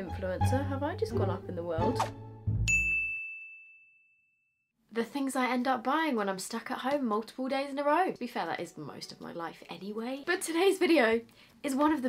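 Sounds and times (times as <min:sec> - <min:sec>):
bright chime ding: 0:02.7 - 0:04.0.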